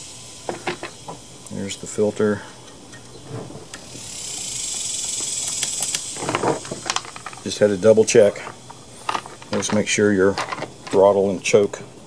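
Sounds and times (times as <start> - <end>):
high steady insect buzz: 0.0 - 12.0.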